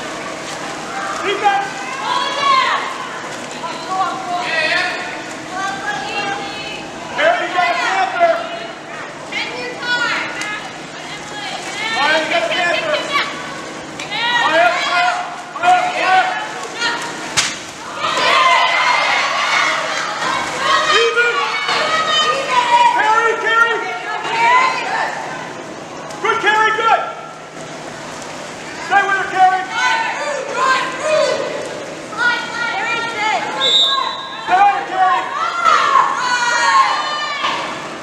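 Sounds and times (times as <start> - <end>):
people shouting across a pool: 0.0 - 38.0
sharp slap: 17.4 - 17.6.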